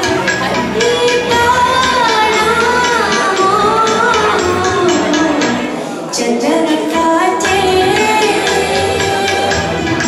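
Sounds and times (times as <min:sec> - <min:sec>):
music with a steady beat: 0:00.0 - 0:05.8, 0:07.0 - 0:10.0
woman singing into a microphone: 0:00.0 - 0:10.0.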